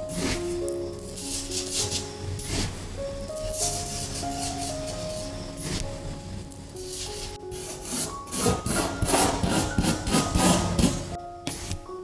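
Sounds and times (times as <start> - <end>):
soft background music: 0.0 - 12.0
plastic spoon scraping sand on paper: 1.2 - 2.7, 6.9 - 11.1.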